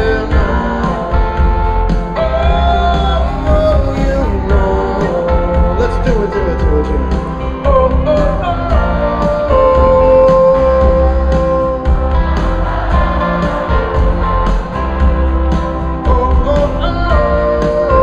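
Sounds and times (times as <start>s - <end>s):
band playing pop-rock: 0.0s - 18.0s.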